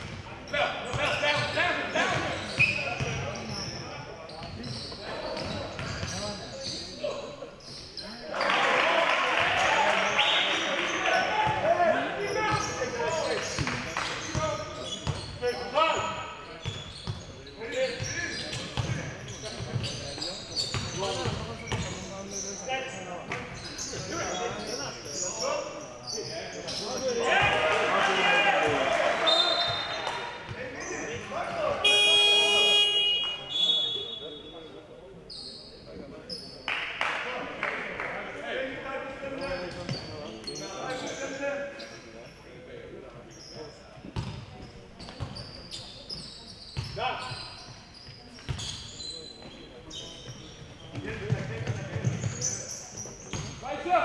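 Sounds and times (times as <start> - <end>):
loud electronic buzzer: 31.8 - 33.5.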